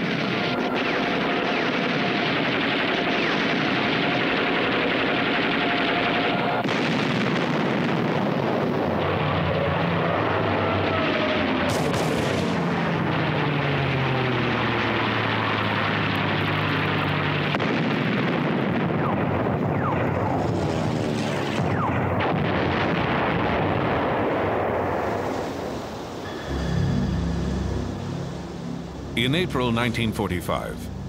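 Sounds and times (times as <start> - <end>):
anti-aircraft gunfire: 0.0 - 26.7
aircraft engine droning: 9.1 - 17.6, 20.2 - 21.6, 24.6 - 31.0.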